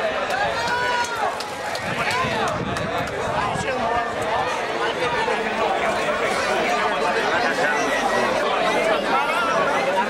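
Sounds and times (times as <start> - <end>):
crowd shouting: 0.0 - 10.0.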